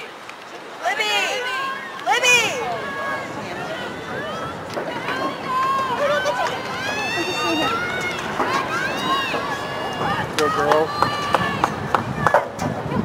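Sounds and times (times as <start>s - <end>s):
voices shouting and cheering: 0.8s - 13.0s
sharp claps or knocks: 10.3s - 12.7s.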